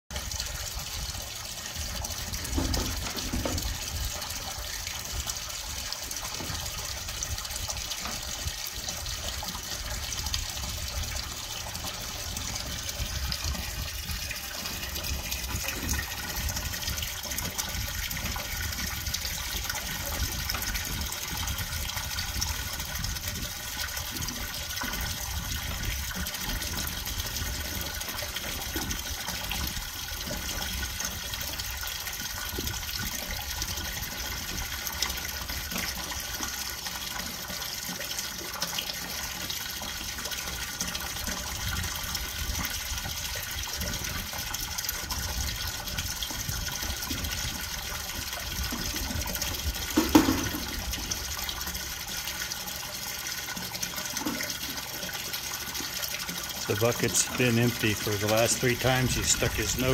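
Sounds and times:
hose water pouring into tank: 0:00.1 - 0:59.9.

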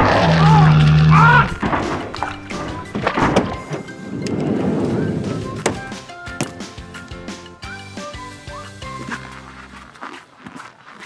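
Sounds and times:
horror film score: 0:00.0 - 0:05.9
short thuds: 0:01.4 - 0:06.8.

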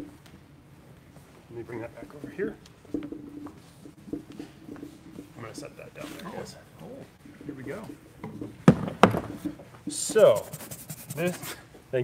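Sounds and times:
plastic case knocking on workbench: 0:08.2 - 0:09.4.

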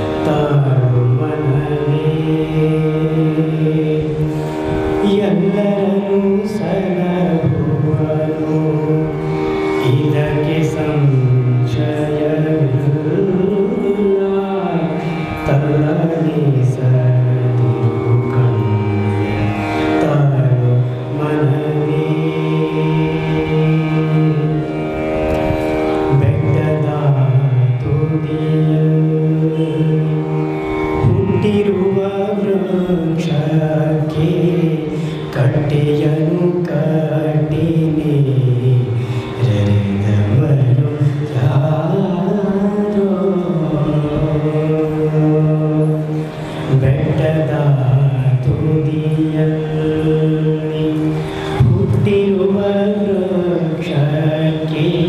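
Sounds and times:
man singing into microphone: 0:00.0 - 0:25.2, 0:26.1 - 0:55.0.

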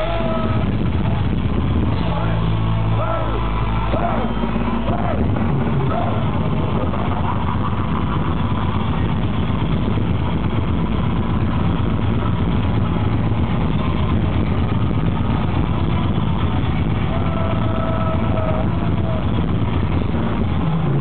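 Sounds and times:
metal band playing live: 0:00.0 - 0:21.0.

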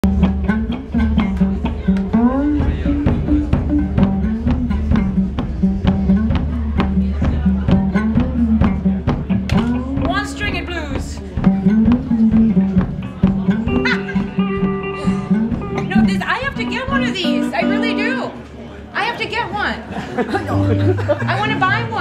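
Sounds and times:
blues guitar playing: 0:00.0 - 0:18.4, 0:20.3 - 0:22.0.

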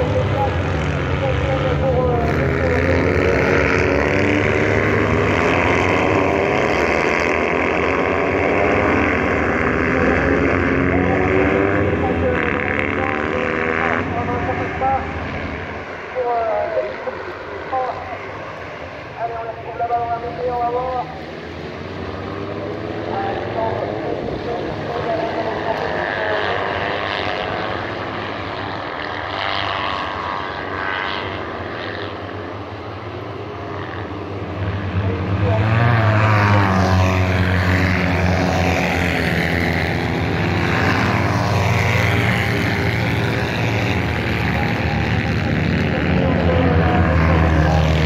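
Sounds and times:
kart engines revving: 0:00.0 - 0:48.0.

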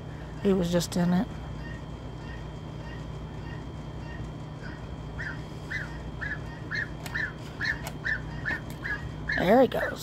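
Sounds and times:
goose peeping calls: 0:04.1 - 0:09.7.

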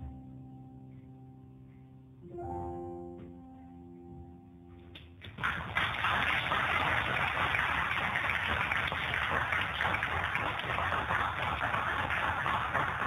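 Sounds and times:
audience applause: 0:05.3 - 0:13.0.

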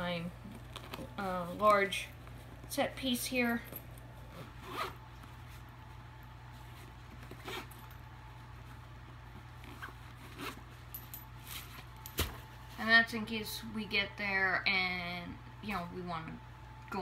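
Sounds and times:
steady low hum: 0:00.0 - 0:17.0
zipper pulls: 0:04.2 - 0:05.6, 0:06.7 - 0:08.0, 0:09.5 - 0:10.8.

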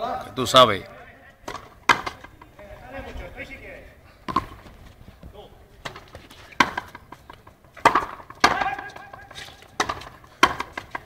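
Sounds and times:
racket striking ball: 0:01.4 - 0:02.9, 0:04.3 - 0:04.7, 0:05.8 - 0:11.0
ball hitting wall: 0:01.5 - 0:03.0, 0:04.3 - 0:04.7, 0:05.3 - 0:11.0.

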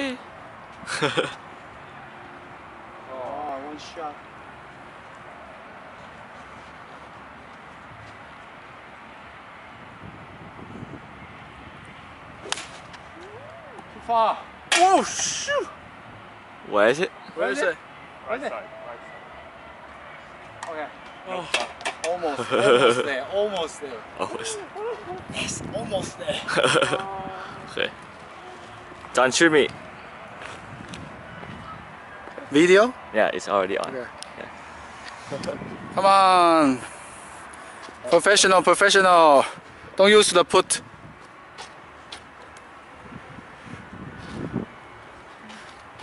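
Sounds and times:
outdoor background hiss: 0:00.0 - 0:31.3, 0:31.9 - 0:46.0.

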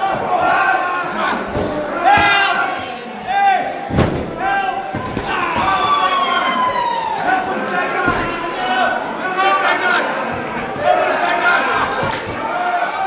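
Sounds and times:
voices shouting: 0:00.0 - 0:13.0
long falling yell: 0:05.3 - 0:07.4.

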